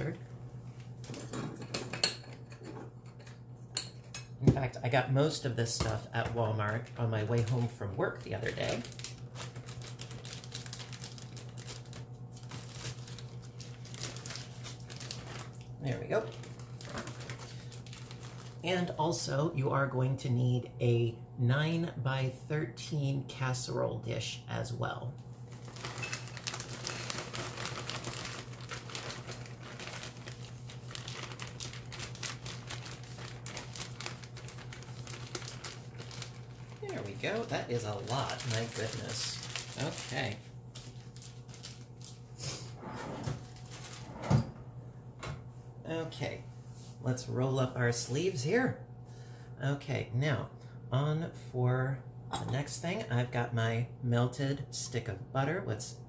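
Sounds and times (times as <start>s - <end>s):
steady low hum: 0.0s - 56.0s
plastic bag crinkling: 6.1s - 19.0s, 25.4s - 42.4s, 43.4s - 44.1s.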